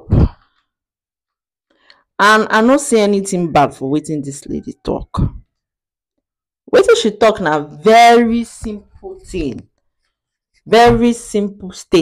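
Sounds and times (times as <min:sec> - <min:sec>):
faint in-breath: 0:01.7 - 0:02.2.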